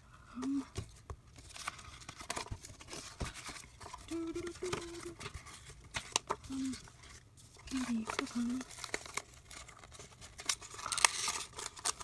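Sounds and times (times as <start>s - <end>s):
person humming: 0.3s - 0.7s, 4.1s - 5.3s, 6.4s - 6.8s
paper sticker sheets rustling: 0.4s - 12.0s.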